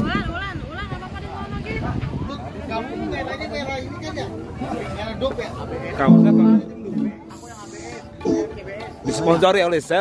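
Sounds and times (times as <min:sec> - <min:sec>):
background voices talking: 0:00.6 - 0:10.0
faint music: 0:03.8 - 0:10.0.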